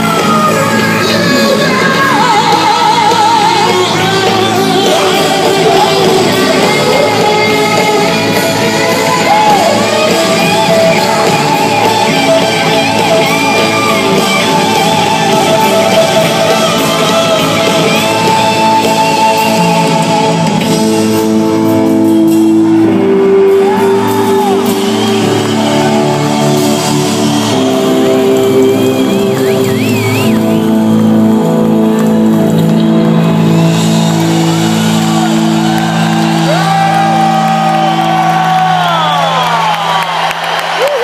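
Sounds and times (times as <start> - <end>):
singer shouting and whooping: 0.0 - 20.5
rock band playing live: 0.0 - 41.0.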